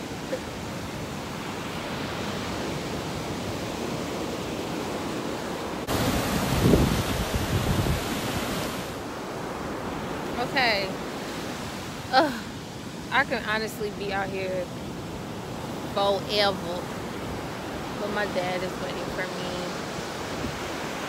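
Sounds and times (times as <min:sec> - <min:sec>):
ocean surf washing onto beach: 0:00.0 - 0:21.0
wind on microphone: 0:02.2 - 0:09.5, 0:15.2 - 0:21.0.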